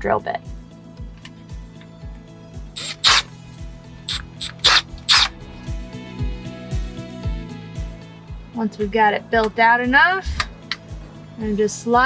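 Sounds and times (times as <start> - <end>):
background music with beat: 0.5 - 12.0
cordless drill reaming plastic: 2.8 - 3.3, 4.0 - 5.4.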